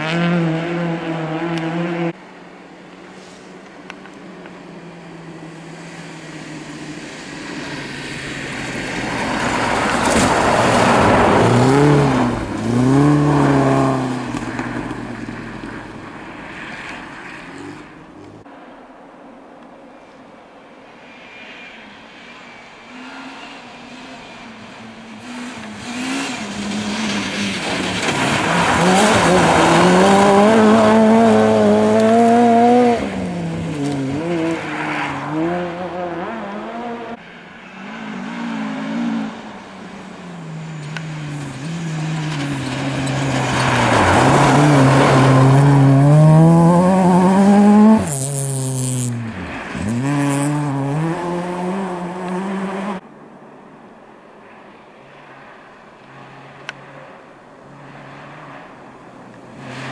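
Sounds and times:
rally car engine revving: 0:00.0 - 0:02.2, 0:04.9 - 0:15.9, 0:23.1 - 0:53.0.

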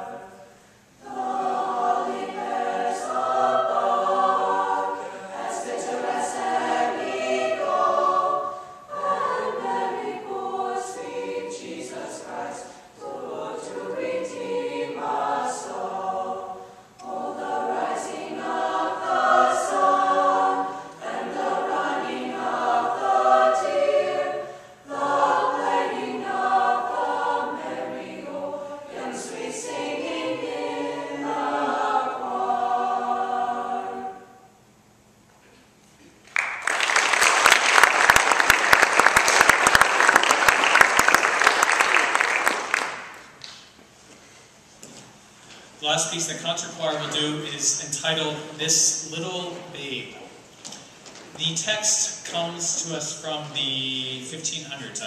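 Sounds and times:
mixed choir singing a cappella: 0:00.0 - 0:34.6.

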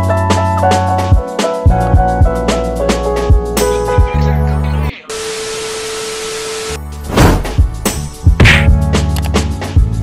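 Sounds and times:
music with a beat: 0:00.0 - 0:04.2, 0:07.4 - 0:10.0.

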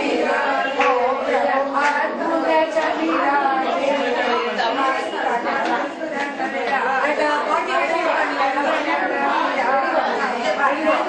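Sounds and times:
many women's voices overlapping: 0:00.0 - 0:11.0.

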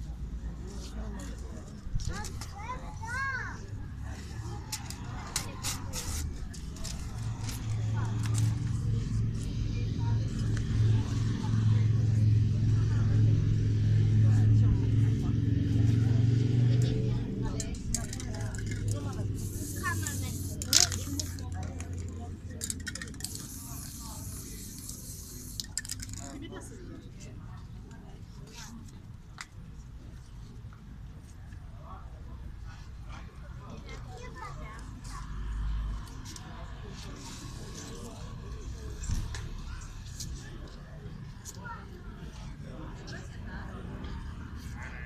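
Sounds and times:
people chattering: 0:00.0 - 0:45.0
low engine drone: 0:07.0 - 0:21.4.

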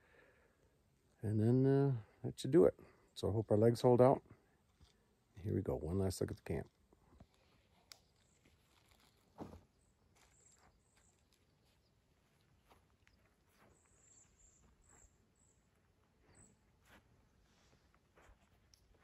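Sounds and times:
faint rustles and ticks: 0:10.2 - 0:19.0.

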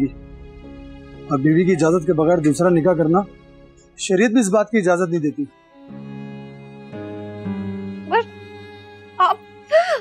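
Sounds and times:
music with held notes: 0:00.0 - 0:10.0.

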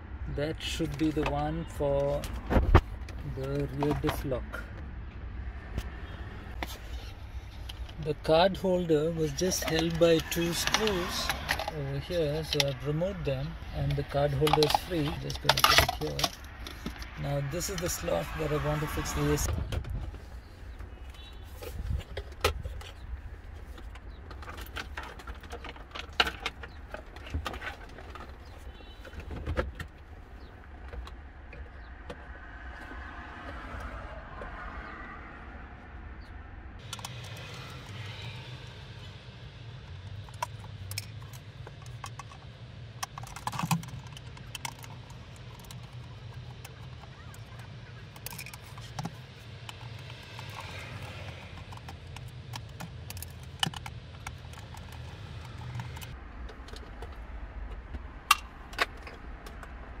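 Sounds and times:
plastic clicks and rattles: 0:13.8 - 0:17.2, 0:40.2 - 0:59.8.

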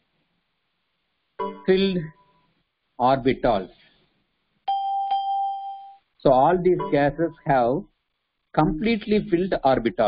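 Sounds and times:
bell-like ding: 0:04.7 - 0:06.0.

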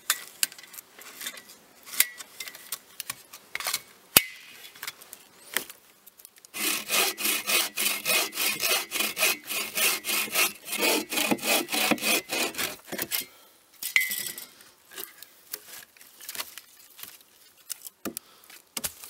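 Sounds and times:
bow saw cutting log: 0:06.6 - 0:13.1.

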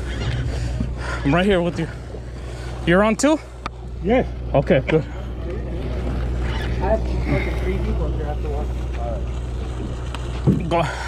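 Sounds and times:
boat machinery drone: 0:00.0 - 0:11.0.

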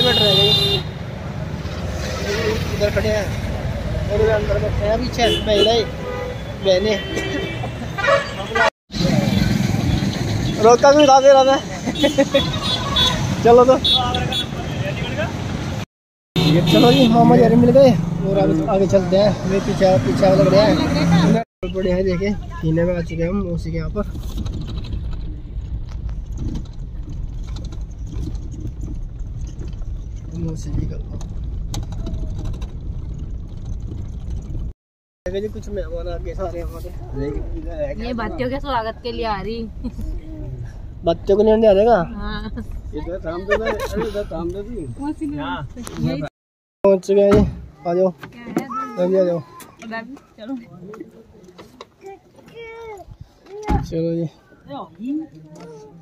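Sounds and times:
engine and tyres rumbling: 0:00.0 - 0:46.3
small rattles and clicks: 0:24.1 - 0:34.7.

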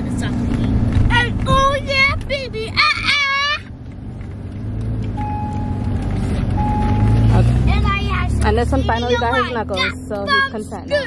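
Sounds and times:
road rumble in car cabin: 0:00.0 - 0:11.0
child shouting: 0:01.2 - 0:03.7, 0:09.0 - 0:11.0.

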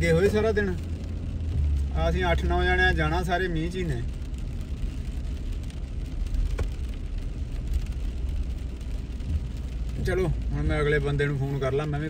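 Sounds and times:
car engine rumble: 0:00.0 - 0:12.0
tyres on wet pavement: 0:00.0 - 0:12.0.

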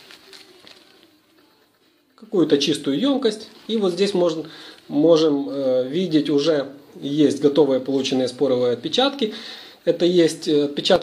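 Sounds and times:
plastic bag and foil crinkling: 0:00.0 - 0:02.0, 0:03.0 - 0:04.9.

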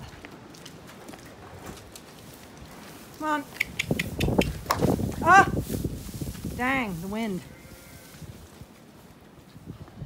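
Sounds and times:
low wind rumble: 0:01.3 - 0:10.0
rustles and taps on straw: 0:03.5 - 0:06.8.

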